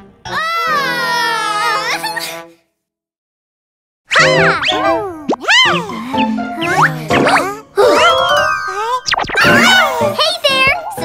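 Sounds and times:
cartoon sliding pitch glides: 4.1s - 9.9s
children's music jingle: 4.2s - 11.0s.

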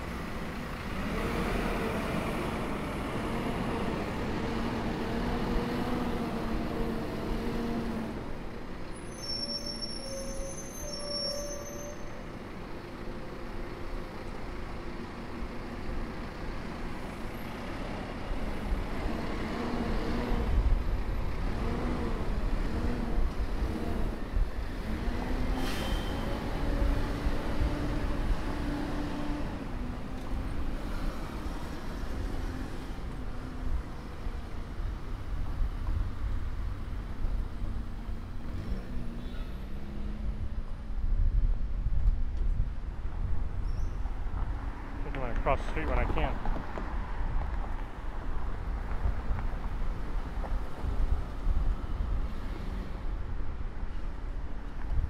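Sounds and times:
diesel bus engine hum: 0.0s - 55.0s
street traffic: 0.0s - 55.0s.

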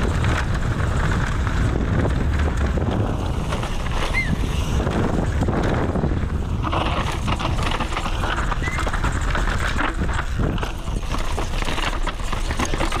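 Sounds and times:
low rumble: 0.0s - 11.2s
mountain bike clattering: 0.0s - 13.0s.

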